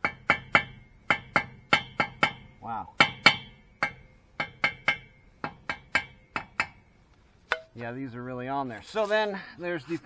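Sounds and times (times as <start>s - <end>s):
hammer striking steel punch: 0.0s - 6.8s.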